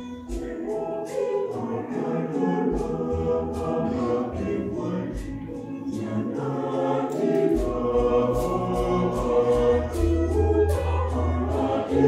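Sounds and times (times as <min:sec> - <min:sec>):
mixed choir singing: 0:00.0 - 0:12.0.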